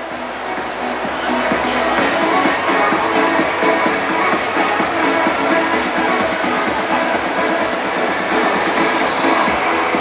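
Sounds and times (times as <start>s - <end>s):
electronic music with steady beat: 0.0s - 10.0s.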